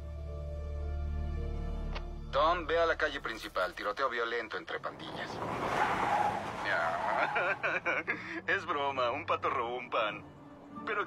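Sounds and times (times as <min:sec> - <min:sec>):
car tyre and road noise: 0:03.2 - 0:10.7.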